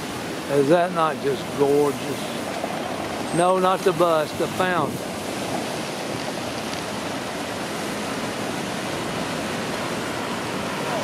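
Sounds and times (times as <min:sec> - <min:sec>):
city traffic passing: 0:00.0 - 0:11.0
fountain water splashing: 0:00.0 - 0:11.0.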